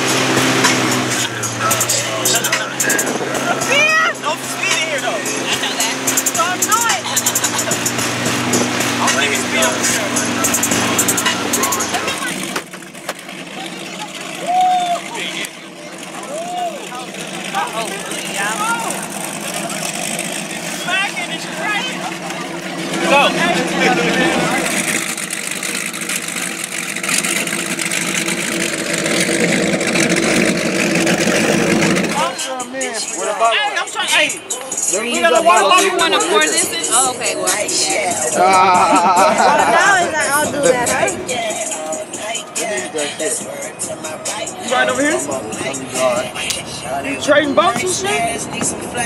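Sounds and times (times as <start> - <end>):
rushing water: 0.0 - 38.5
boat motor running: 0.0 - 49.0
people chattering outdoors: 0.0 - 49.0.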